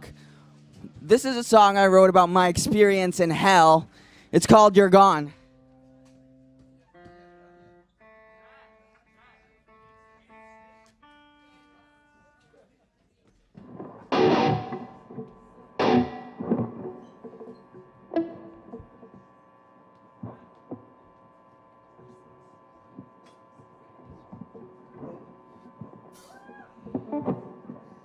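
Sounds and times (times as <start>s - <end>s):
electric guitar single notes: 13.6s - 28.0s
electric guitar strummed chords: 13.6s - 28.0s.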